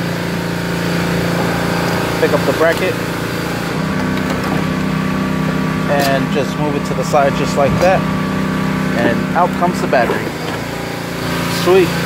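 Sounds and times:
engine humming: 0.0s - 12.0s.

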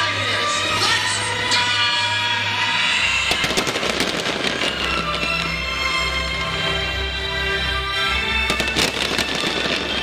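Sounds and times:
music: 0.0s - 10.0s
fireworks crackling pops: 3.3s - 5.6s, 8.5s - 10.0s.

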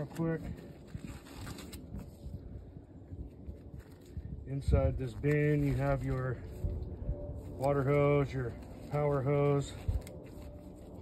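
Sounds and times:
gloves rustling: 0.0s - 11.0s.

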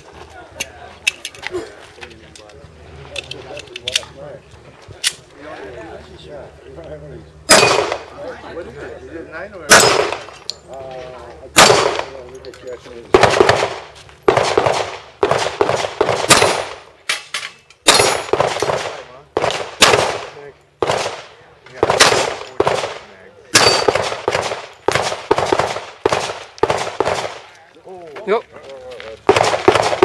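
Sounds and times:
pistol shots: 7.5s - 8.1s, 9.7s - 10.4s, 11.5s - 12.2s, 13.1s - 16.9s, 17.8s - 27.5s, 29.3s - 30.0s.

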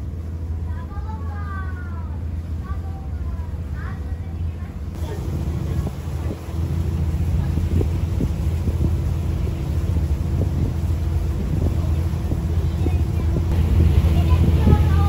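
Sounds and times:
ferry engine droning: 0.0s - 15.0s
higher steady hum: 0.0s - 15.0s
wind buffeting microphone: 0.0s - 15.0s.

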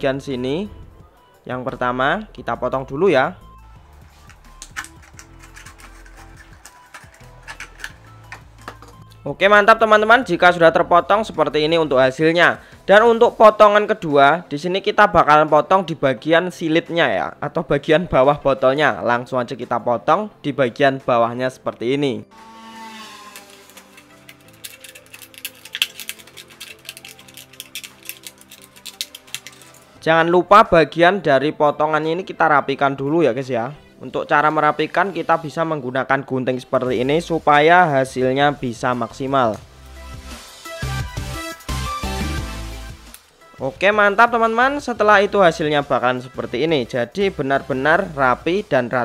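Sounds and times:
quiet background music: 0.0s - 49.0s
blade cutting plastic bottle: 4.5s - 9.0s, 22.3s - 29.9s.

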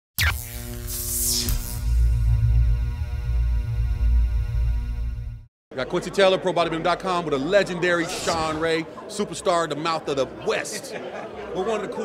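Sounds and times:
pulsing low bass: 1.5s - 5.5s
falling swoosh: 8.0s - 8.9s
noisy whoosh: 8.0s - 8.9s.

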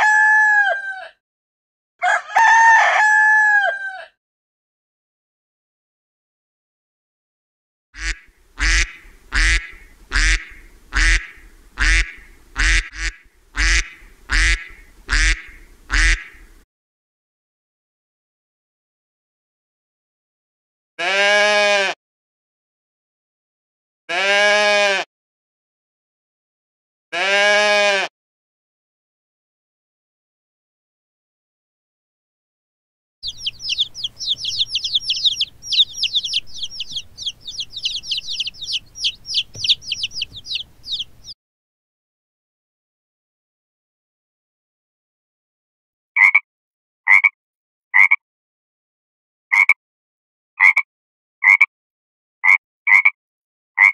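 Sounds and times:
frog croaking: 8.0s - 16.2s, 33.2s - 41.1s, 46.2s - 46.4s, 47.1s - 47.4s, 48.0s - 48.2s, 49.6s - 49.8s, 50.6s - 50.8s
goat bleating: 21.0s - 22.0s, 24.1s - 25.1s, 27.2s - 28.1s.

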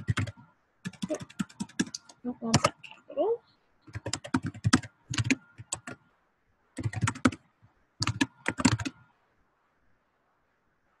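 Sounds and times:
typing on computer keyboard: 0.0s - 2.8s, 3.9s - 6.0s, 6.8s - 7.4s, 8.0s - 9.0s.

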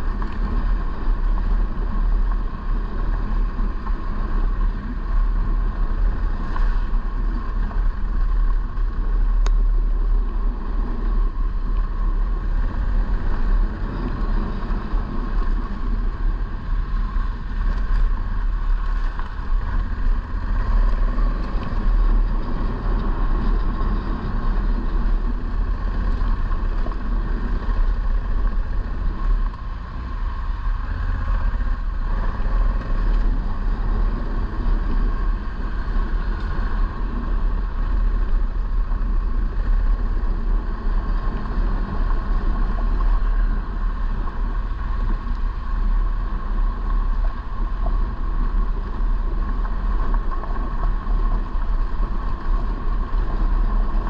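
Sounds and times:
motorcycle engine running: 0.0s - 54.0s
road noise on gravel: 0.0s - 54.0s.

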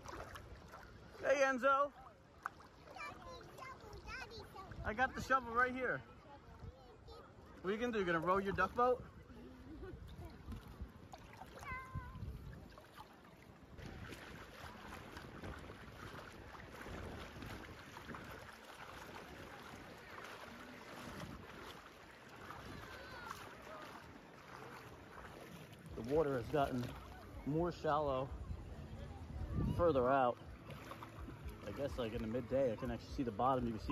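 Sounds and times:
water sloshing around wader: 0.0s - 33.9s
wind rumble on microphone: 8.6s - 23.4s, 28.2s - 33.9s.

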